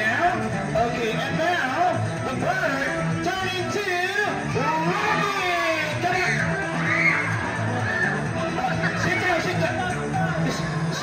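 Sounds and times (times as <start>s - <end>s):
upbeat music with bass line: 0.0s - 11.0s
children shouting excitedly: 4.5s - 9.4s.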